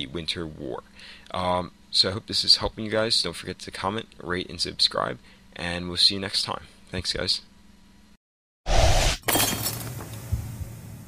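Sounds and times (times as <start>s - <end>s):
glass shattering: 9.2s - 10.0s.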